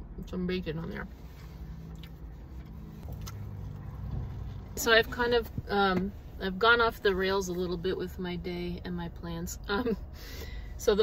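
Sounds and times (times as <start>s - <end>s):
car engine idling: 1.2s - 11.0s.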